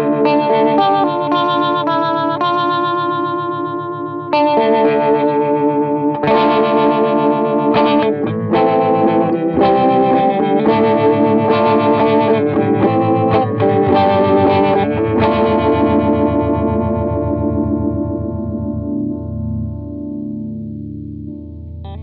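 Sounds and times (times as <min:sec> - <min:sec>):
electric guitar strummed with phaser: 0:00.0 - 0:22.0.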